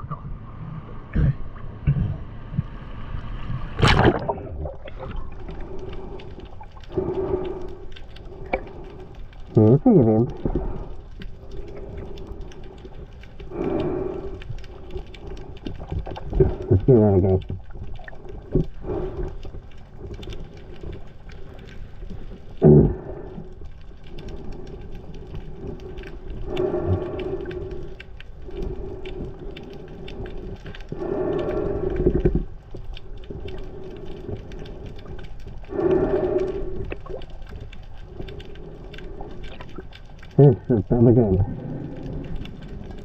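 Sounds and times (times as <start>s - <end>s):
underwater low hum: 0.0s - 43.0s.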